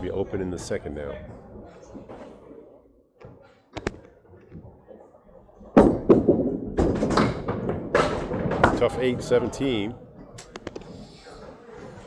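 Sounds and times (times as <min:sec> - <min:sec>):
bowling pins clattering: 0:05.6 - 0:09.6.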